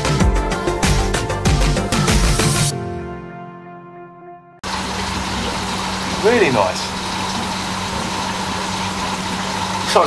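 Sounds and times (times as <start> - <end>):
aquarium pumps humming: 4.6 - 10.0.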